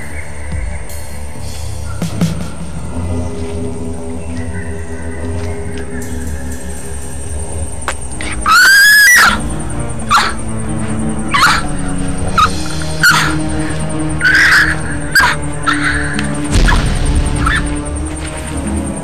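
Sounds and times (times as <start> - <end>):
dark film score: 0.0 - 19.0
harsh bird calls: 0.0 - 19.0
loud high shriek: 8.2 - 9.5, 12.3 - 17.8.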